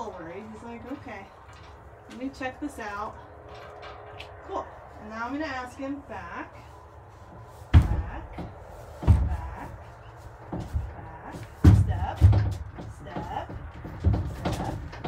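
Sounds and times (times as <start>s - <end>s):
hooves thudding in horse trailer: 6.2s - 15.0s.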